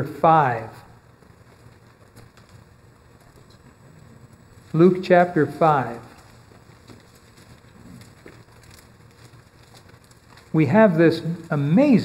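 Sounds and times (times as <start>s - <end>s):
soft paper ticks: 1.0s - 3.8s, 4.6s - 11.9s
book pages rustling: 5.8s - 11.4s.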